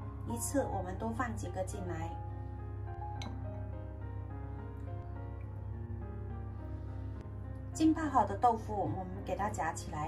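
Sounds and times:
gentle instrumental music: 0:00.0 - 0:10.0.

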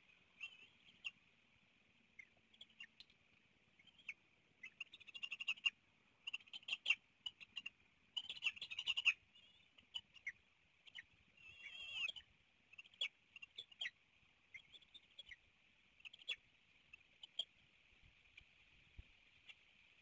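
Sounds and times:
eagles chittering calls: 0:06.3 - 0:13.9.

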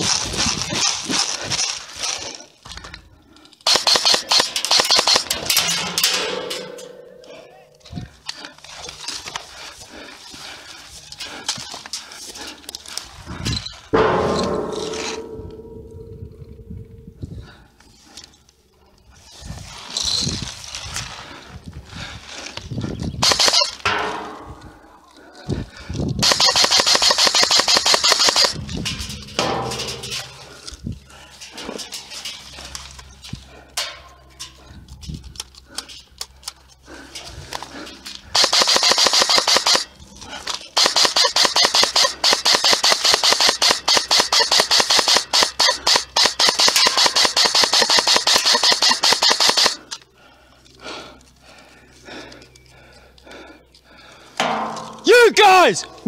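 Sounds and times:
airsoft rifle automatic fire: 0:03.7 - 0:05.4, 0:23.2 - 0:23.8, 0:26.2 - 0:28.6, 0:38.3 - 0:39.9, 0:40.8 - 0:49.8.

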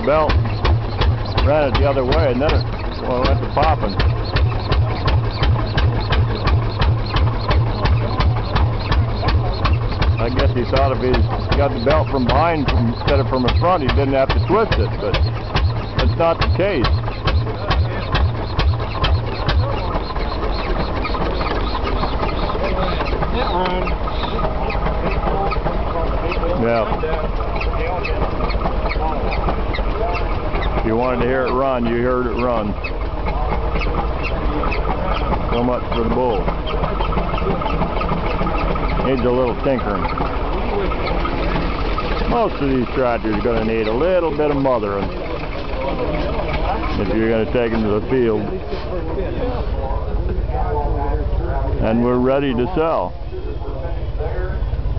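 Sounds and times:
steady engine drone: 0:00.0 - 0:54.9
tractor engine popping: 0:00.0 - 0:54.9.

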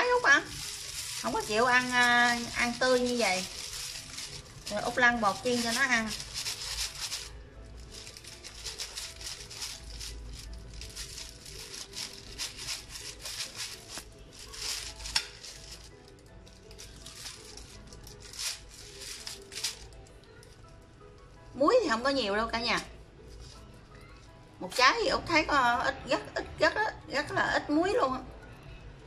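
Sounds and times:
plastic bag crinkling: 0:00.0 - 0:20.6
faint background music: 0:00.0 - 0:29.0.

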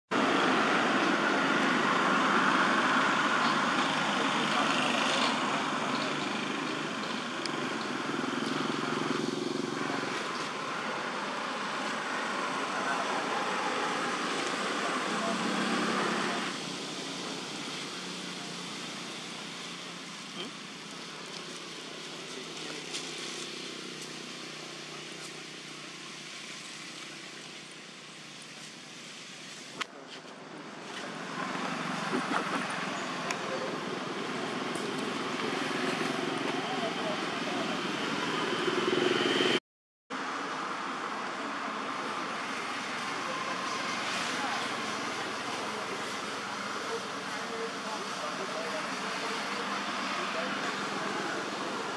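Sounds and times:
outdoor background noise: 0:00.1 - 0:51.9.

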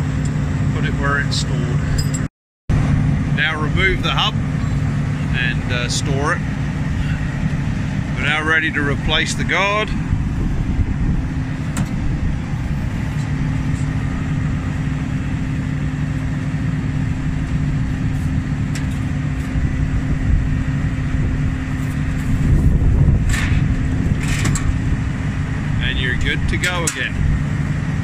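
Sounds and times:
engine idling: 0:00.0 - 0:28.0
sheet metal guard clanking: 0:23.2 - 0:24.8.

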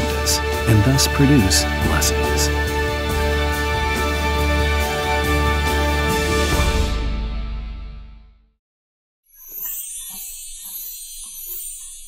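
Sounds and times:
high-pitched sparkle chime effect: 0:09.3 - 0:12.0.

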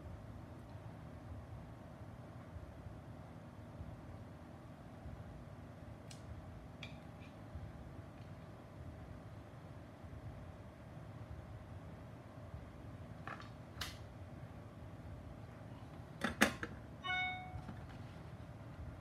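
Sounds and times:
electronic beep tone: 0:17.0 - 0:17.7.

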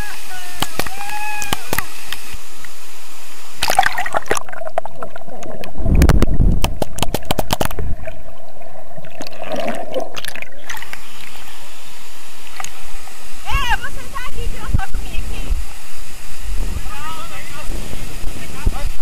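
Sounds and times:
waterfall splashing on camera: 0:00.0 - 0:07.9, 0:10.1 - 0:19.0
muffled underwater surge: 0:01.6 - 0:19.0.

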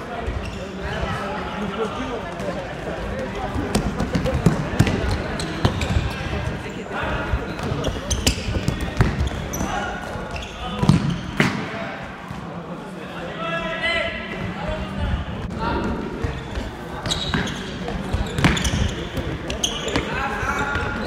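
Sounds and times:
voices calling out in hall: 0:00.0 - 0:21.0.

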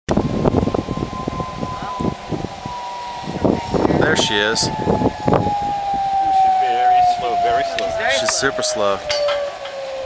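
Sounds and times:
wind on microphone: 0:00.1 - 0:10.0.

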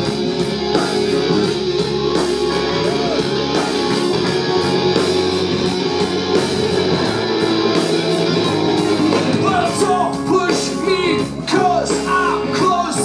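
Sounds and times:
electric guitars: 0:00.0 - 0:13.0
keyboard: 0:00.0 - 0:13.0.

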